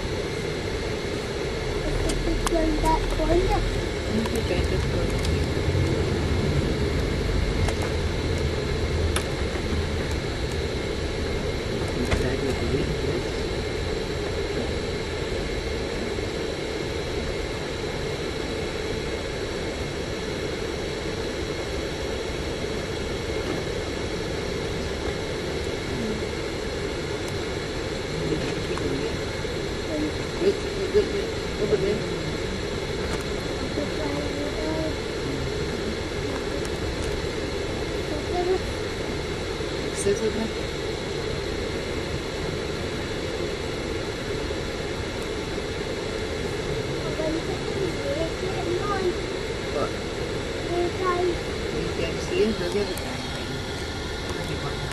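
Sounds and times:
bus engine and road noise: 0:00.0 - 0:54.9.

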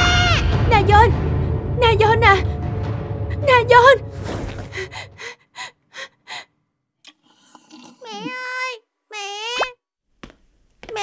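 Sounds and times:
child calling out: 0:08.0 - 0:09.8.

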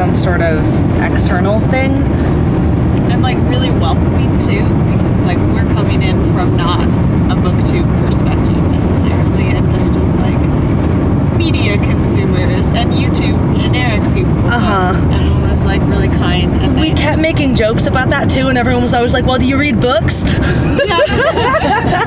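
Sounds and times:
car interior road rumble: 0:00.0 - 0:22.0
women's voices: 0:03.0 - 0:10.5, 0:11.4 - 0:22.0.

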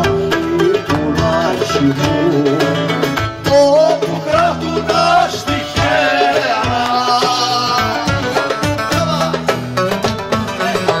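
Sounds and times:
man singing: 0:00.0 - 0:09.6, 0:10.5 - 0:11.0
acoustic guitar: 0:00.0 - 0:11.0.

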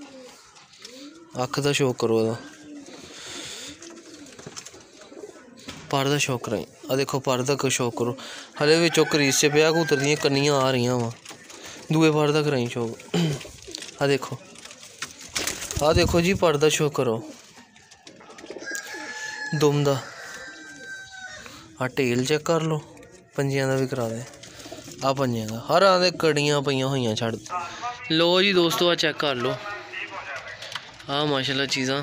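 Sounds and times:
pigeons cooing: 0:00.0 - 0:27.8
man talking: 0:01.3 - 0:02.5, 0:05.9 - 0:11.2, 0:11.8 - 0:14.4, 0:15.7 - 0:17.3, 0:21.8 - 0:24.4, 0:25.0 - 0:32.0
distant rooster crowing: 0:08.6 - 0:10.5, 0:18.6 - 0:21.6.

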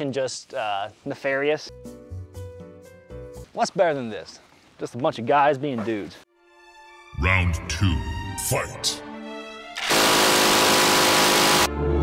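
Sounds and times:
minigun firing continuous burst: 0:09.8 - 0:11.7.

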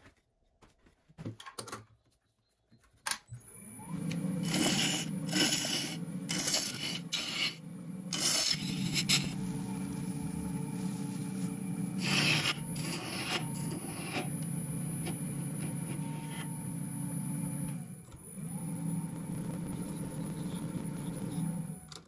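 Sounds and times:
wood lathe spinning: 0:03.7 - 0:21.8
gouge scraping resin: 0:04.4 - 0:16.5.

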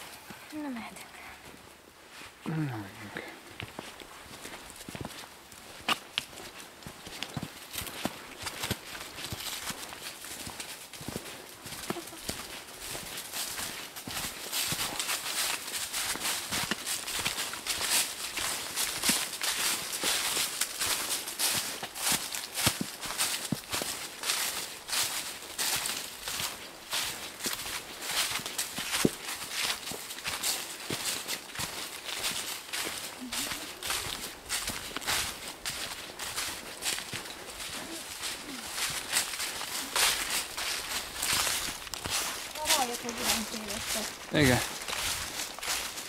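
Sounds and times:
footsteps crunching dry leaves: 0:01.4 - 0:46.0.

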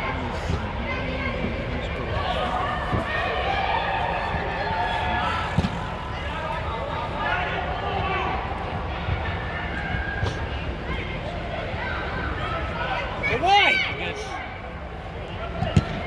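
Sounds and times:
soccer ball kicked thump: 0:15.6 - 0:16.0.

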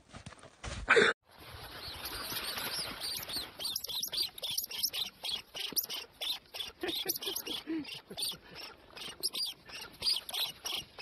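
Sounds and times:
small animal squeaking: 0:02.0 - 0:11.0.

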